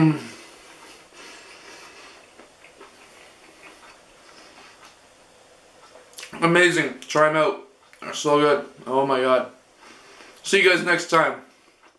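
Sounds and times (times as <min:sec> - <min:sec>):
person chewing with mouth closed: 0:00.4 - 0:05.0, 0:05.8 - 0:06.4.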